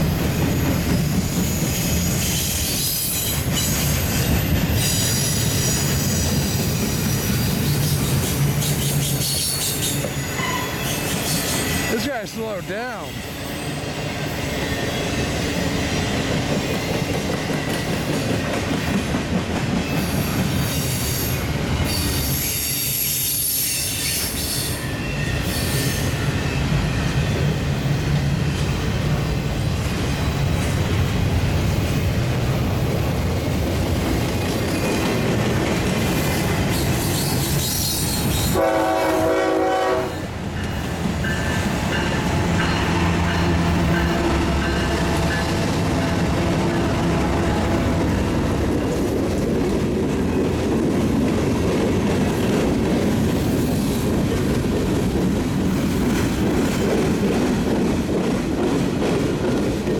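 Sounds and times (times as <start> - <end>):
train wheels rumbling on rail: 0.0 - 59.9
diesel locomotive drone: 24.7 - 59.9
train horn blast: 38.5 - 40.3, 42.2 - 48.5.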